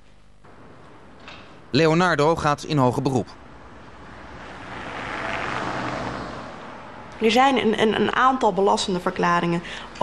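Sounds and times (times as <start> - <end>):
vehicle passing by: 3.4 - 8.1.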